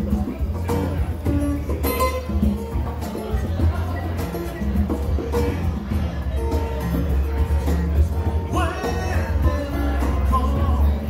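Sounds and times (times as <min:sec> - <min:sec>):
acoustic guitar strumming: 0:00.0 - 0:11.0
congas playing: 0:00.0 - 0:11.0.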